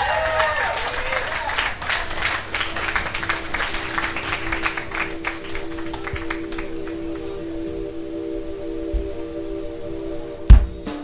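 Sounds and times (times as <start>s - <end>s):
audience clapping: 0.0s - 7.5s
sustained drone of held tones: 1.5s - 10.5s.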